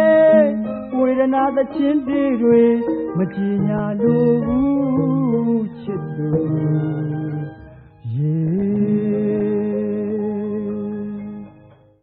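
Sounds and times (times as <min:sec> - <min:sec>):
singing voice holding long notes: 0:00.0 - 0:11.6.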